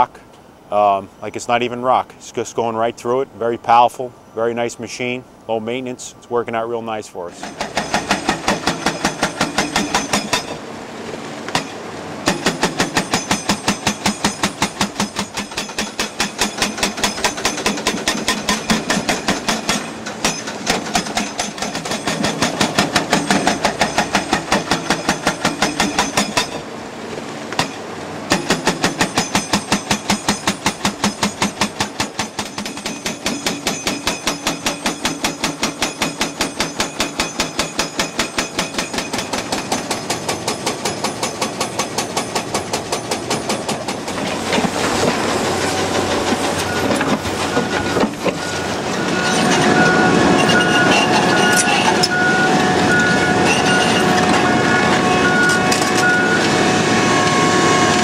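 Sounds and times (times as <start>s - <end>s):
hydraulic breaker pounding rock: 7.3s - 10.6s, 11.5s - 26.7s, 27.5s - 58.0s.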